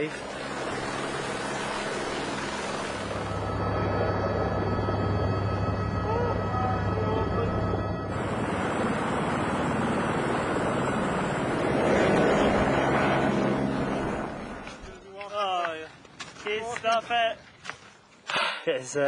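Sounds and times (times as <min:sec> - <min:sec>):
helicopter turbine and rotor: 0:00.0 - 0:15.0
steady whine: 0:00.0 - 0:15.2.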